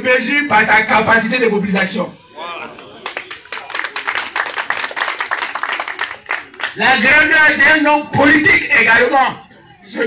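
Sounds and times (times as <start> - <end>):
audience clapping: 2.7 - 6.8.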